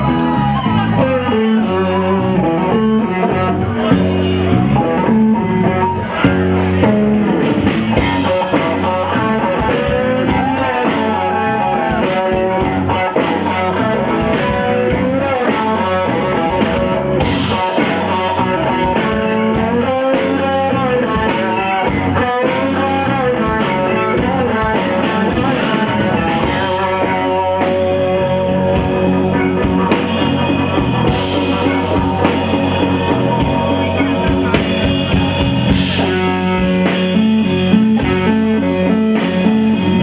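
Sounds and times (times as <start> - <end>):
live rock band playing: 0.0 - 40.0.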